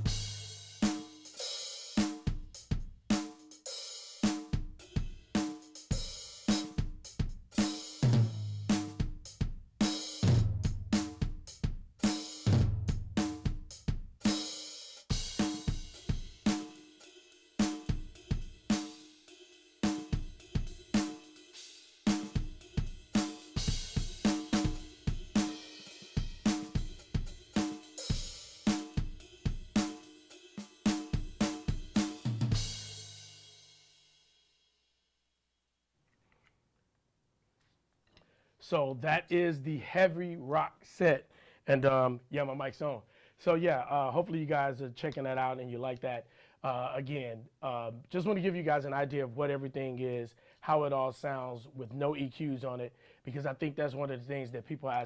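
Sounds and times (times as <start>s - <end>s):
electronic drum kit groove: 0.0s - 33.6s, 54.8s - 55.0s.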